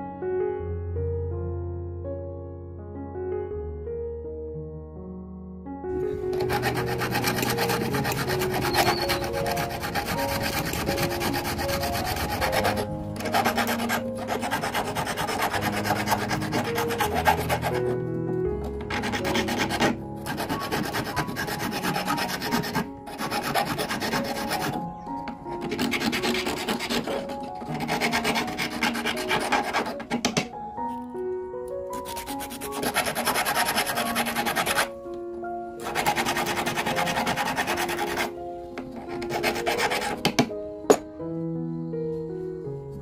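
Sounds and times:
metal file rasping on metal: 6.1 - 18.0, 18.7 - 24.8, 25.6 - 30.5, 32.0 - 34.9, 35.8 - 38.3, 39.0 - 41.0.

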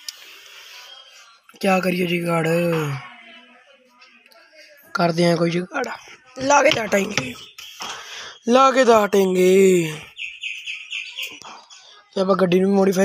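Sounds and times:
person's voice: 4.9 - 7.4.

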